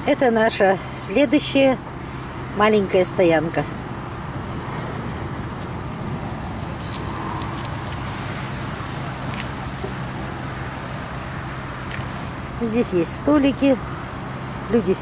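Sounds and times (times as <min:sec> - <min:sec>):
constant low hum: 0:00.0 - 0:15.0
motorway traffic rumble: 0:00.0 - 0:15.0.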